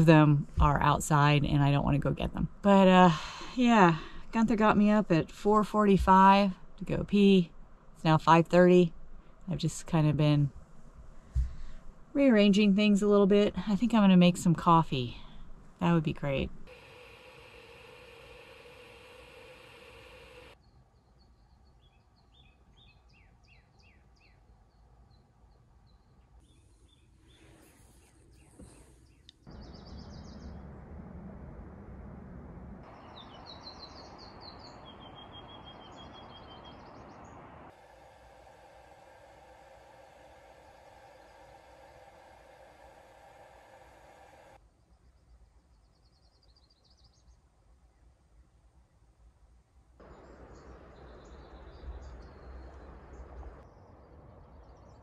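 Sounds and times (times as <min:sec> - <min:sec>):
faint birdsong: 0:00.7 - 0:31.1, 0:32.8 - 0:49.2, 0:50.0 - 0:55.0
background hiss: 0:02.4 - 0:20.6.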